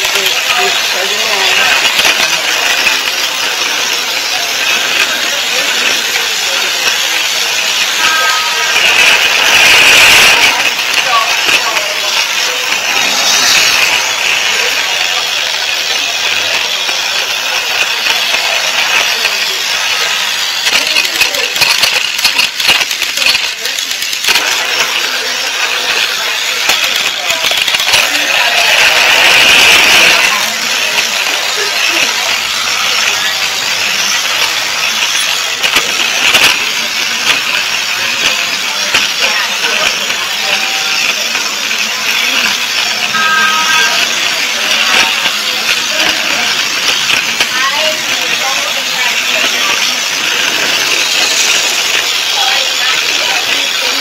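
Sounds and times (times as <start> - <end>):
toy train motor and gears: 0.0 - 54.0
wheels clicking over track joints: 0.0 - 54.0.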